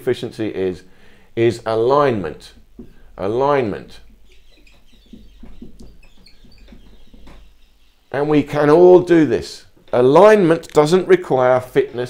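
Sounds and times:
marker squeaking on whiteboard: 0:03.9 - 0:08.1.

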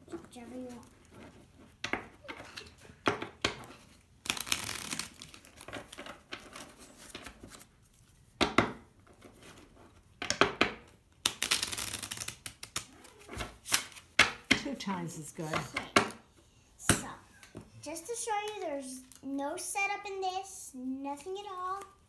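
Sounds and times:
playing cards being shuffled: 0:03.7 - 0:08.0, 0:11.2 - 0:14.4.

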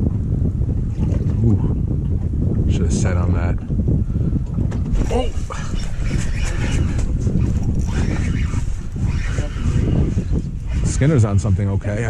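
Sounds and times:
wind rumble on microphone: 0:00.0 - 0:12.0
people talking indistinctly: 0:04.9 - 0:12.0.

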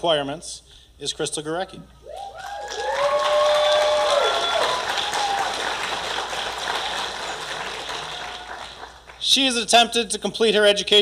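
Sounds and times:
people whooping and cheering: 0:02.0 - 0:09.0
audience applauding: 0:02.4 - 0:09.3.

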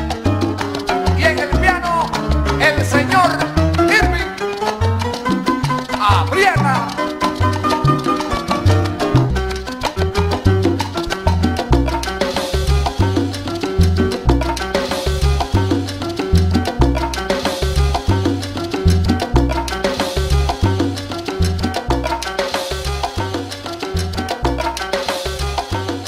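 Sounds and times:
instrumental salsa band: 0:00.0 - 0:26.0.

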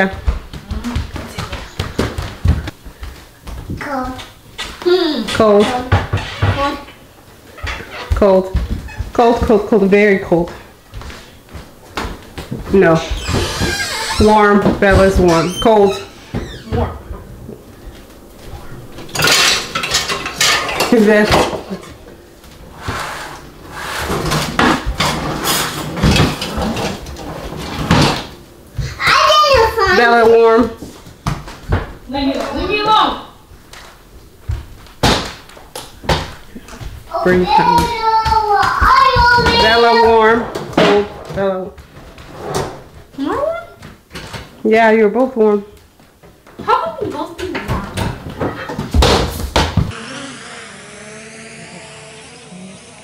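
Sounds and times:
child speaking: 0:03.8 - 0:06.9, 0:15.4 - 0:17.1, 0:28.8 - 0:30.3, 0:37.1 - 0:40.4, 0:43.2 - 0:43.8, 0:46.6 - 0:47.9
knocks and thumps: 0:11.9 - 0:17.2, 0:46.5 - 0:49.9
pots and pans clattering: 0:19.0 - 0:22.1, 0:24.0 - 0:28.4.

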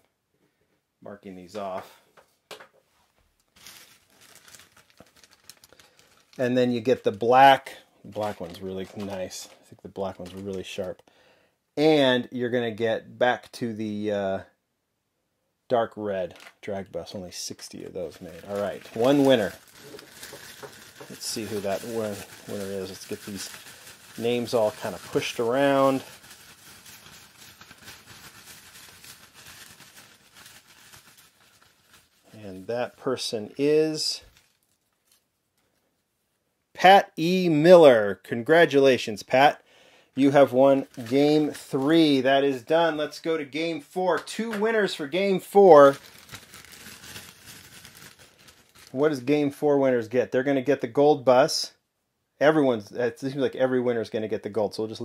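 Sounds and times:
plastic bag crinkling: 0:03.4 - 0:11.0, 0:17.7 - 0:35.4, 0:40.2 - 0:43.2, 0:44.2 - 0:49.3.

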